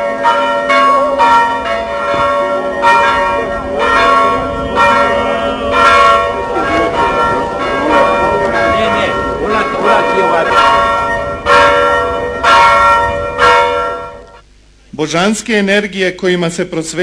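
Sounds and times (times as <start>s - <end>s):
church bells ringing: 0.0s - 14.4s.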